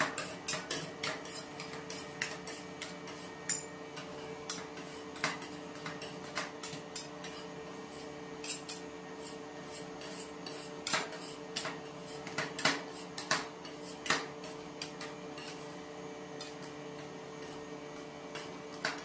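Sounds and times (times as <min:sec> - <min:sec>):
metal spatulas scraping a plate: 0:00.0 - 0:15.8.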